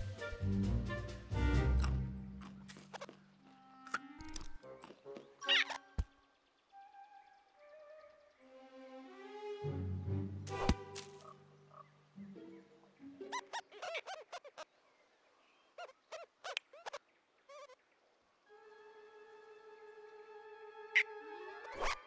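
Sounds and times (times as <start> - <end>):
orchestral film score: 0.0 - 6.1, 6.7 - 13.5, 18.5 - 22.0
cartoon rodents high-pitched laughter: 13.3 - 14.6.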